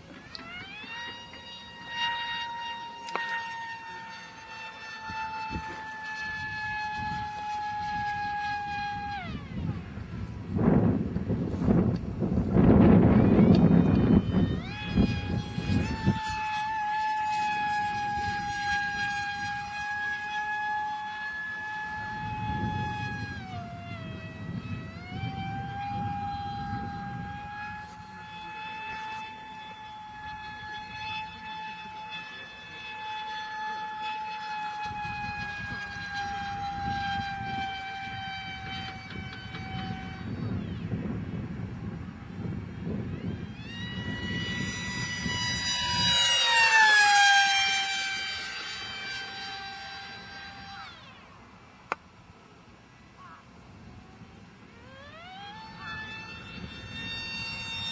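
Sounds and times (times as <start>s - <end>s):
model jet motor whining: 0.0s - 57.9s.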